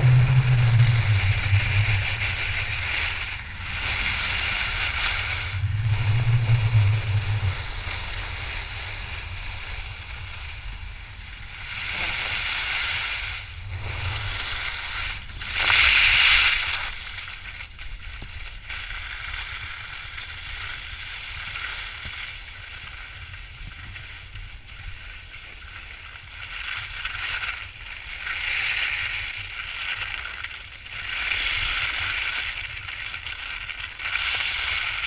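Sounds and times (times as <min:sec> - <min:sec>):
skis carving on snow: 0:00.0 - 0:35.0.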